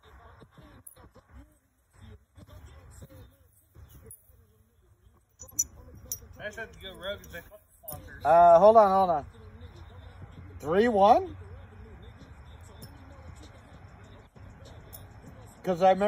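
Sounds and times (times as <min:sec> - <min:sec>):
faint distant talk: 0:00.0 - 0:16.0
metal washers clinking: 0:05.3 - 0:08.2, 0:14.8 - 0:15.8.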